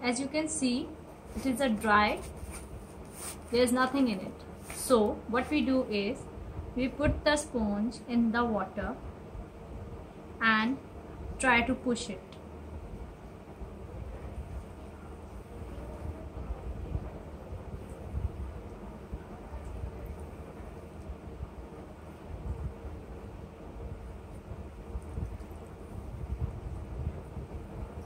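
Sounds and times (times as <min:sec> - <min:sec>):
faint steady hum: 0:00.0 - 0:28.0.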